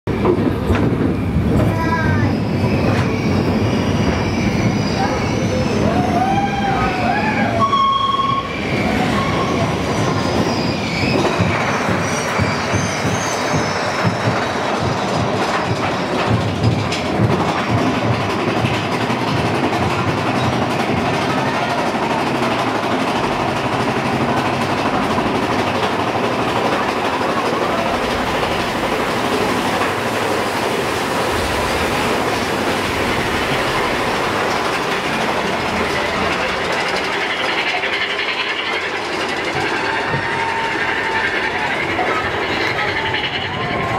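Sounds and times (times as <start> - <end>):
roller coaster rattling rumble: 0.1 - 43.9
wheels clacking: 8.6 - 43.9.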